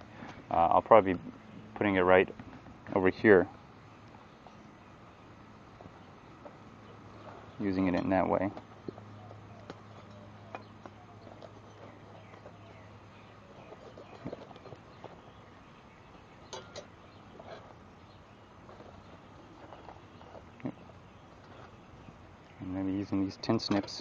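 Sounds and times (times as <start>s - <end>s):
low steady hum: 0.0s - 24.0s
handling clicks and knocks: 5.7s - 15.6s, 16.4s - 21.8s, 23.3s - 24.0s.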